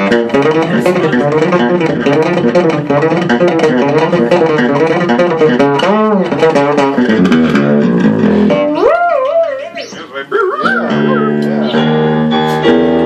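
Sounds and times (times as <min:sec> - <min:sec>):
fretless electric bass: 0:00.0 - 0:09.3, 0:10.6 - 0:13.0.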